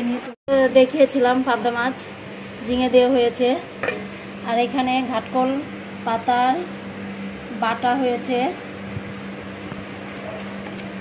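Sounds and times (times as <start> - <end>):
woman speaking: 0.0 - 3.7, 4.4 - 6.8, 7.5 - 8.6
steel kitchenware clinking: 3.8 - 4.1.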